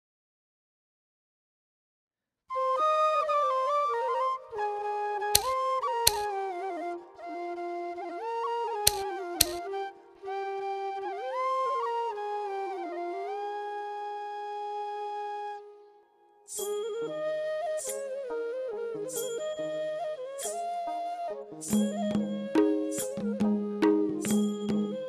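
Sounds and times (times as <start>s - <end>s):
flute playing slow melody: 2.5s - 25.0s
sharp taps: 5.4s - 6.3s, 8.9s - 9.6s.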